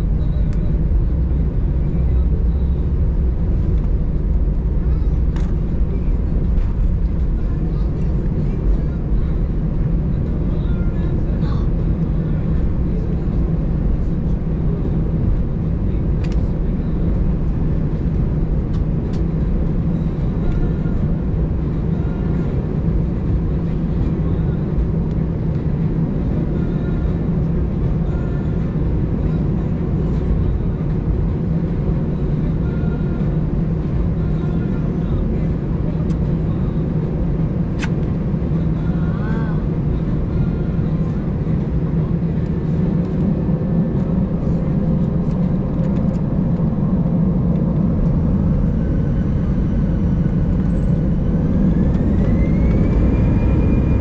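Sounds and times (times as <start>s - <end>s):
jet engines droning: 0.0s - 54.0s.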